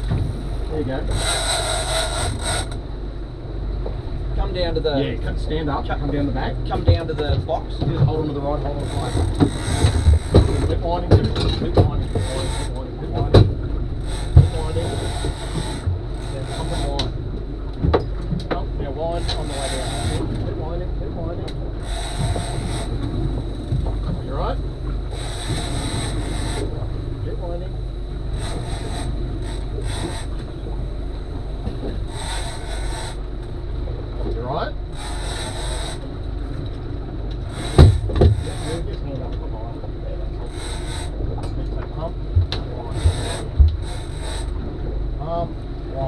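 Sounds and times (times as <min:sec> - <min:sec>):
boat engine rumbling: 0:00.0 - 0:46.0
water around boat: 0:00.0 - 0:46.0
wind: 0:00.0 - 0:46.0.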